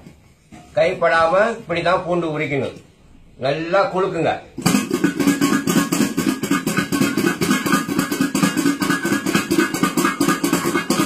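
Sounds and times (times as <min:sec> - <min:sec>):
garlic rattling in shaken bowls: 0:04.6 - 0:11.0.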